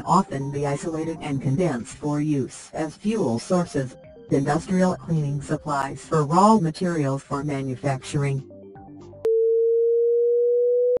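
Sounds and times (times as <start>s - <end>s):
faint music: 0.0s - 8.5s
electronic sine tone: 9.2s - 11.0s.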